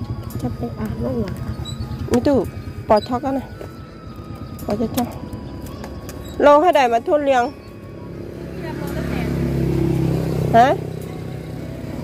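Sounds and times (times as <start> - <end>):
motorcycle passing by: 0.0 - 12.0.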